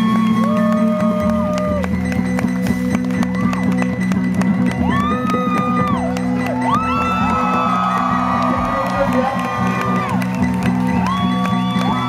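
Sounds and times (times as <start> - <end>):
crowd whooping and cheering: 0.0 - 2.0, 3.0 - 12.0.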